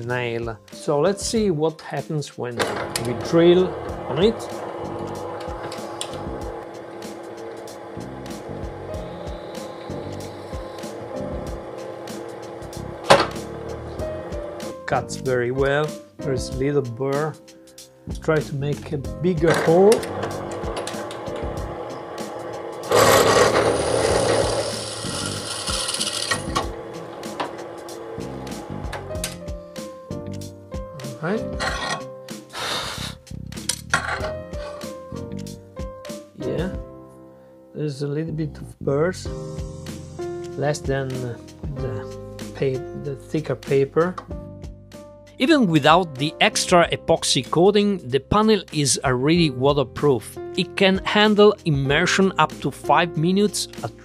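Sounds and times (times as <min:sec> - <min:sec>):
background music: 0:00.0 - 0:54.0
drill bit cutting through panel: 0:02.9 - 0:14.6, 0:20.4 - 0:28.8.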